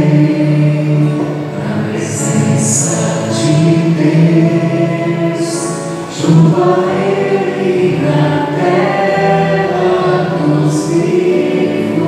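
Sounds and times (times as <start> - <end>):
group singing a psalm: 0.0 - 12.0.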